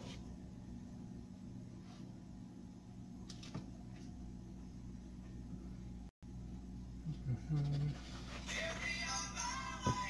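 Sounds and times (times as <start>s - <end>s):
man humming: 7.0s - 8.2s.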